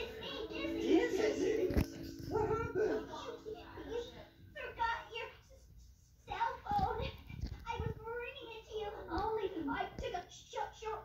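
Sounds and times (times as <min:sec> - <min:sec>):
wordless vocal sounds from television: 0:00.0 - 0:11.0.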